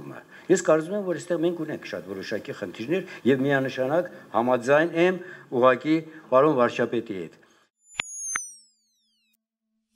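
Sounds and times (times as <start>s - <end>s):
man speaking: 0.0s - 7.4s
sharp electronic clicks: 7.9s - 9.4s.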